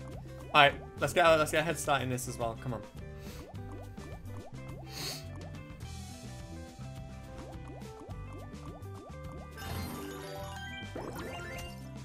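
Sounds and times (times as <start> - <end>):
game backing music: 0.0 - 12.0.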